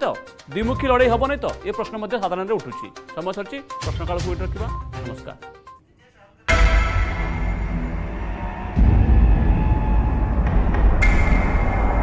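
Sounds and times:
bright hit: 6.5 - 9.8.

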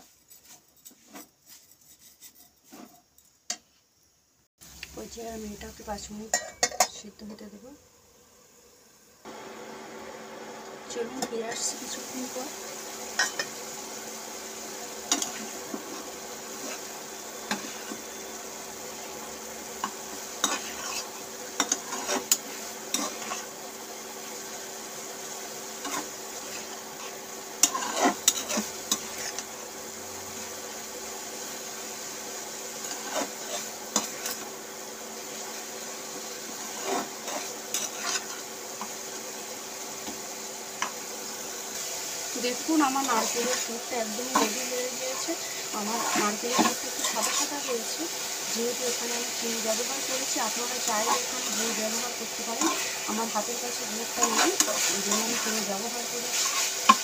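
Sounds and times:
steady hiss: 0.0 - 6.3, 7.0 - 57.0
spatula scraping metal pan: 13.2 - 13.6, 15.0 - 18.4, 19.8 - 23.5, 25.8 - 29.5, 32.8 - 34.5, 36.6 - 38.9, 42.7 - 49.1, 49.7 - 57.0.

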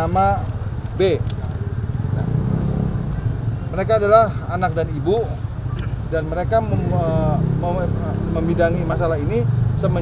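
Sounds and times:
vehicle engines rumbling: 0.0 - 10.0.

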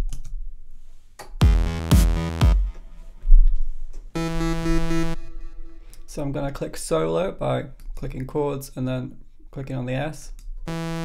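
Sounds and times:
held synth chord: 1.4 - 3.1, 4.2 - 6.1.

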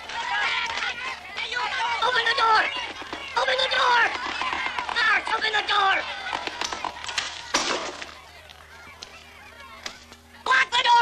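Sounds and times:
faint shouting: 0.0 - 11.0.

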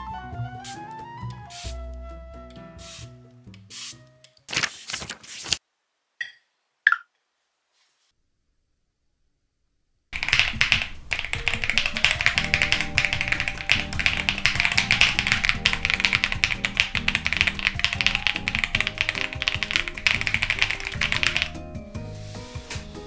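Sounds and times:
background music: 0.0 - 4.5, 10.2 - 23.0
rapid typing on mechanical keyboard: 10.2 - 21.6.

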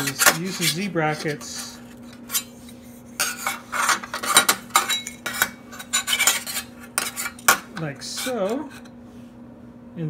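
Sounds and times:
metal brackets clinking and scraping: 0.0 - 8.9.

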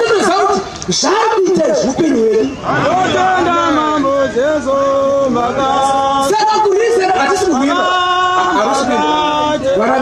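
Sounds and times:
man preaching into microphone: 0.0 - 10.0.

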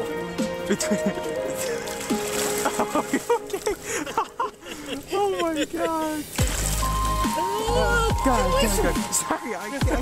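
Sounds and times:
fish thrashing and splashing: 1.3 - 9.0.

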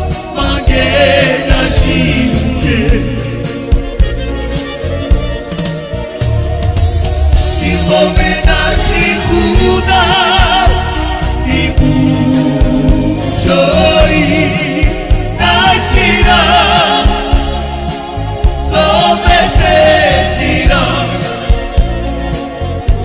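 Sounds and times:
person singing with vibrato: 0.0 - 5.2, 7.4 - 23.0
band with quick percussive beat: 0.0 - 23.0.

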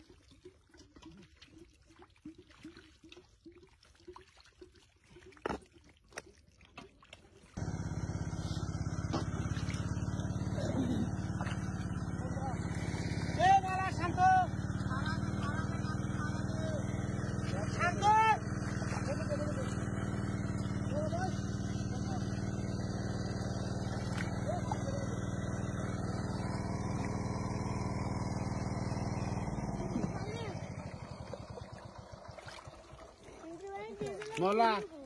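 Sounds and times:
engine drone: 7.6 - 33.4.

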